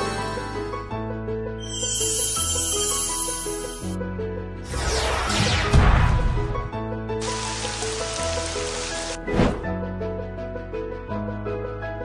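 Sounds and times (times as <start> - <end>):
background music with sustained notes: 0.0 - 12.0
steady rain: 7.2 - 9.2.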